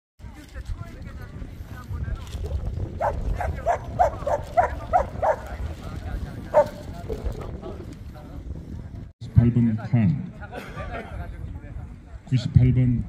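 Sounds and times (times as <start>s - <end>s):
wind rumble on microphone: 0.2s - 13.0s
dog barking: 3.0s - 5.5s, 6.5s - 6.8s.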